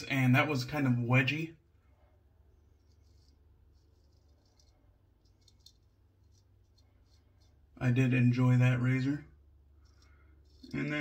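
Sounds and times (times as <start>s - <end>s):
razor scraping stubble: 2.6s - 8.1s, 9.7s - 11.0s.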